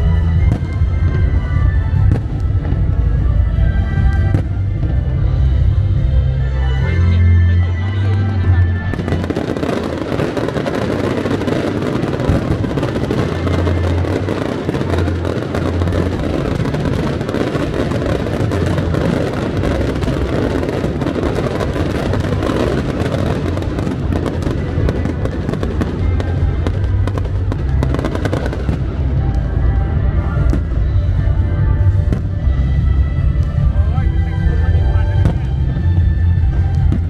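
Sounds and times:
fireworks bursting and crackling: 0:00.0 - 0:06.2, 0:08.1 - 0:37.0
loud music with strong bass: 0:00.0 - 0:37.0.

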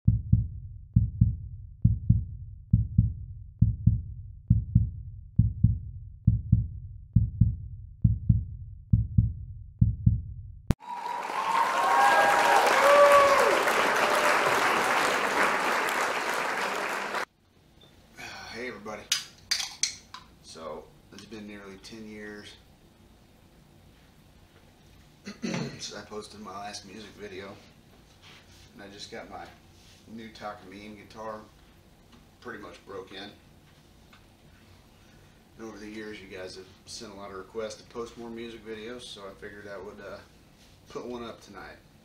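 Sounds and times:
heartbeat thumps: 0:00.0 - 0:10.8.

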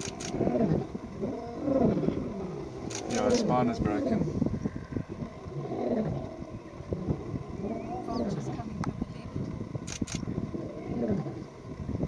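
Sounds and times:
lions snarling and roaring: 0:00.0 - 0:08.8, 0:09.9 - 0:11.7
short clicks: 0:02.9 - 0:03.4.

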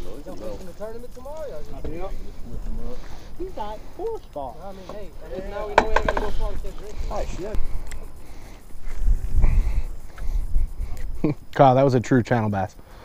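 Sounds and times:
wind buffeting microphone: 0:00.0 - 0:11.6
people talking and calling out: 0:00.0 - 0:12.8.

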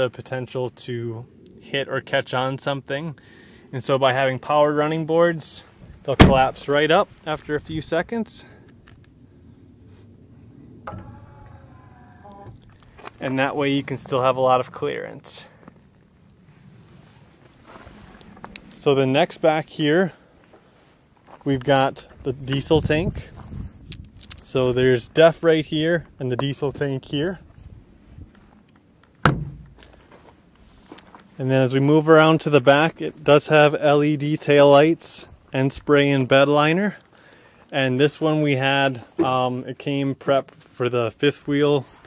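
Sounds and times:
fuel filler door thunk: 0:06.2 - 0:06.6, 0:10.8 - 0:12.6, 0:29.2 - 0:29.8.

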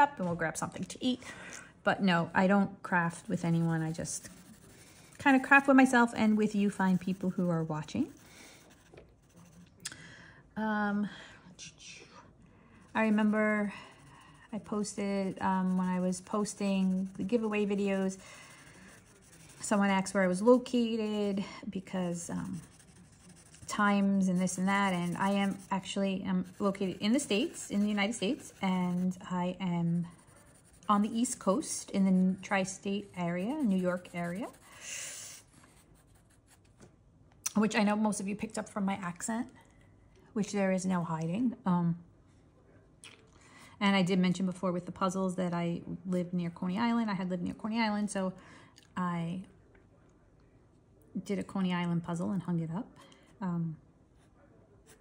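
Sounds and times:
marker scratching on paper: 0:03.0 - 0:09.6, 0:12.9 - 0:36.7.

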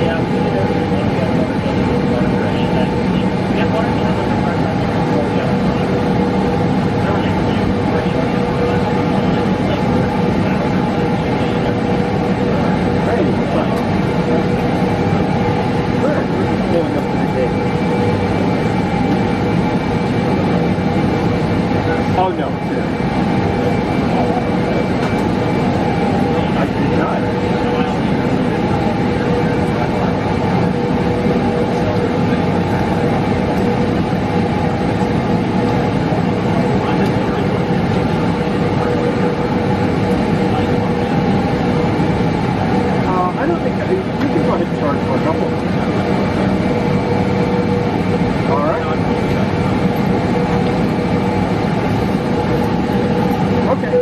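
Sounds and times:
jet engines idling in cabin: 0:00.0 - 0:54.0.

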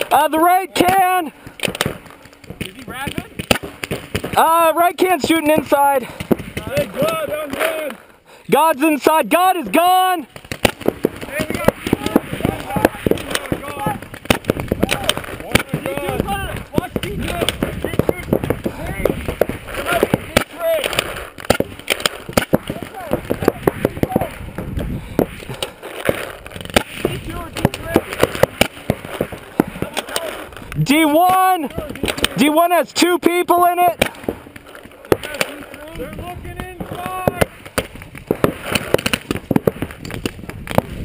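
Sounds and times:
players shouting: 0:00.0 - 0:01.4, 0:06.6 - 0:10.4, 0:11.1 - 0:24.4, 0:26.9 - 0:37.6
paintball markers firing: 0:00.0 - 0:08.0, 0:10.2 - 0:41.0.

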